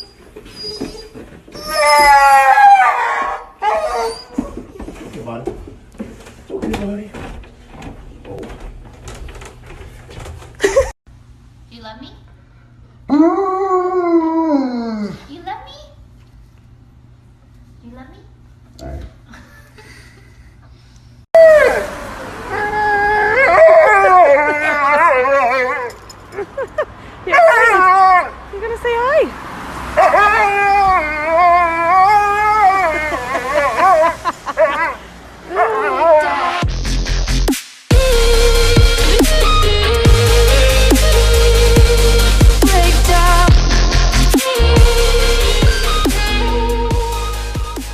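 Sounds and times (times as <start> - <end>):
dog howling: 0.0 - 4.4, 21.4 - 26.1, 27.3 - 28.4, 29.9 - 36.6
electronic music with heavy bass: 36.6 - 47.9.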